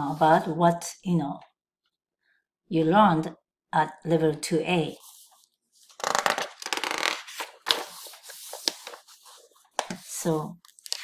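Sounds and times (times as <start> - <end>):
page turning rustle: 4.9 - 11.0
paper rubbing: 4.9 - 11.0.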